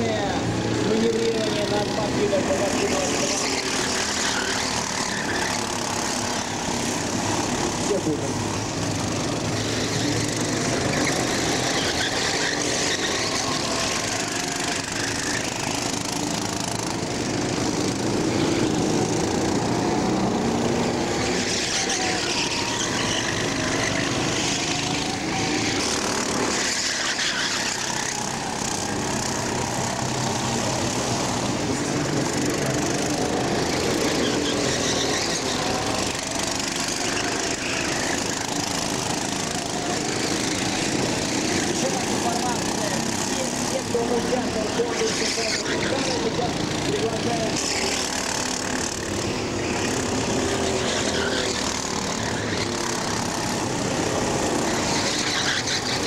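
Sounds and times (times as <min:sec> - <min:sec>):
kart engines at high revs: 0:00.0 - 0:56.0.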